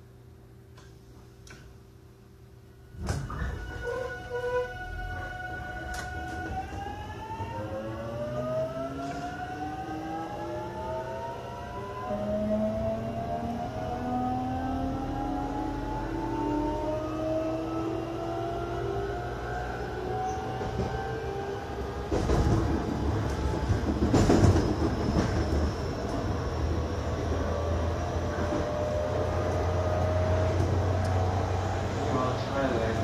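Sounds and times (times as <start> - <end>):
electric train motors whining: 3.5 - 33.0.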